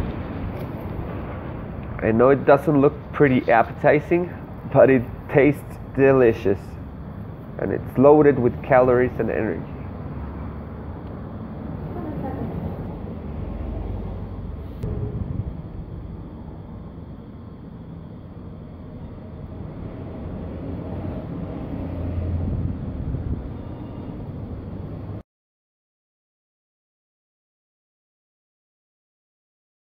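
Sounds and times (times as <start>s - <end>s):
low background rumble: 0.0s - 25.2s
faint voice: 11.8s - 12.8s.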